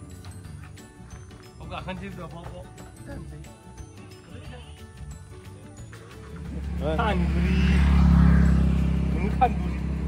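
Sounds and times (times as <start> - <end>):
vehicle engine humming: 5.6 - 10.0.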